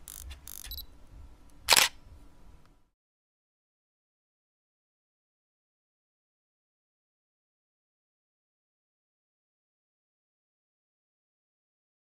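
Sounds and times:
camera shutter snap: 0.0s - 0.8s, 1.7s - 2.0s
mechanical clicks: 0.0s - 0.8s, 1.7s - 2.0s.

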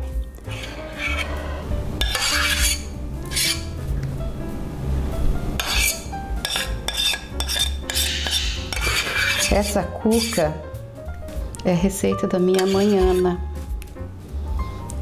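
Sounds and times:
soft background music: 0.0s - 15.0s
spoon scraping saucepan: 0.5s - 3.8s, 5.6s - 10.6s, 12.5s - 13.4s.

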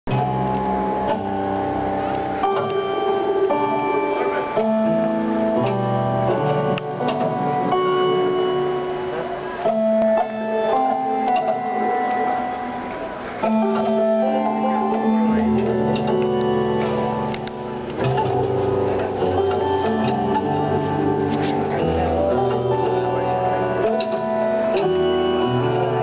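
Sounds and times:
organ-like keyboard chords: 0.1s - 26.0s.

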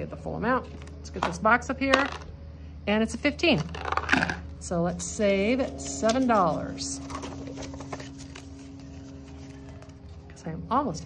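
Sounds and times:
low steady hum: 0.0s - 11.0s
paper banknotes rustling: 5.6s - 10.3s.

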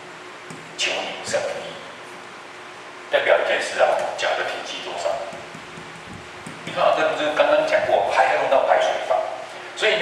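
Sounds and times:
man speaking into microphone: 0.8s - 2.0s, 3.2s - 5.5s, 6.7s - 10.0s.

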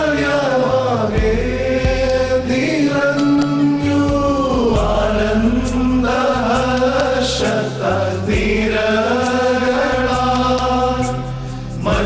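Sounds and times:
man singing a hymn: 0.0s - 11.2s, 11.8s - 12.0s.

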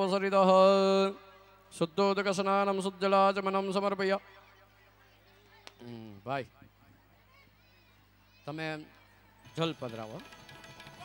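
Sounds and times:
man's voice: 0.0s - 4.3s.

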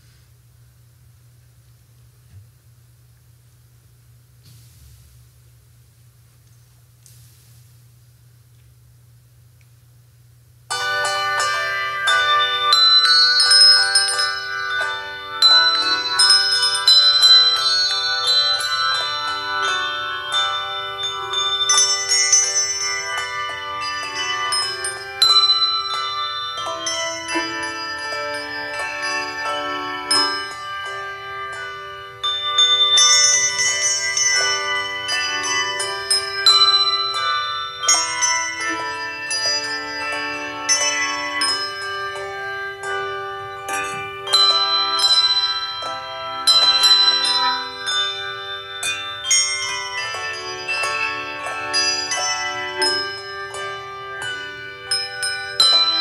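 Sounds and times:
handbell choir ringing a hymn: 10.7s - 56.0s.

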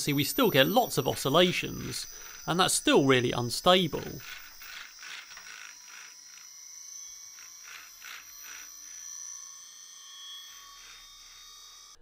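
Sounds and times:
motor high-pitched whine: 0.0s - 12.0s.

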